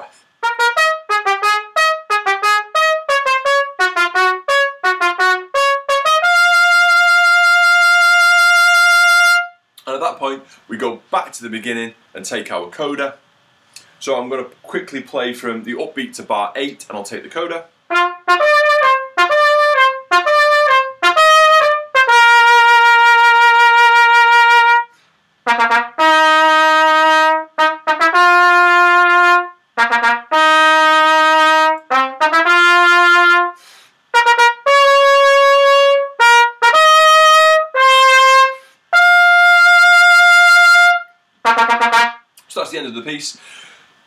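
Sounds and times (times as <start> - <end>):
solo trumpet playing: 0.0 - 9.6, 17.9 - 42.3.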